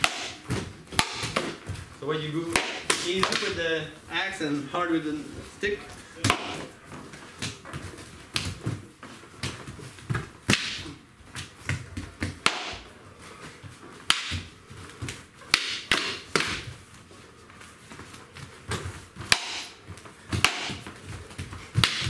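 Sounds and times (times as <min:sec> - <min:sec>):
sparring weapons clacking: 0:21.7 - 0:22.0.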